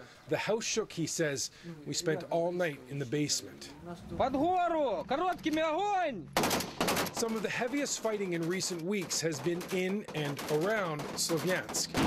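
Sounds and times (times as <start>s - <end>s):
voice: 0.3s - 6.2s, 7.2s - 12.0s
assault rifle burst: 6.4s - 7.3s.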